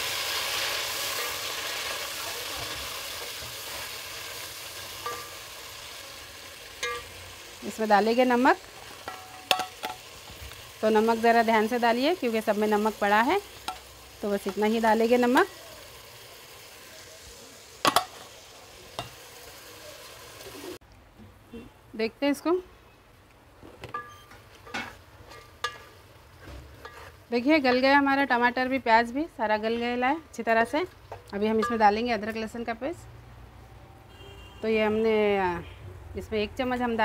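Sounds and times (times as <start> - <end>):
vegetables sizzling in a pot: 0.0 - 20.8, 23.8 - 33.1
glass lid clinking on pot: 6.8 - 7.1.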